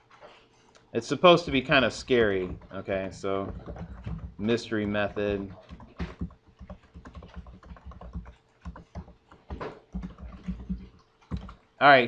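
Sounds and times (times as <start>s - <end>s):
typing on computer keyboard: 1.4s - 11.7s.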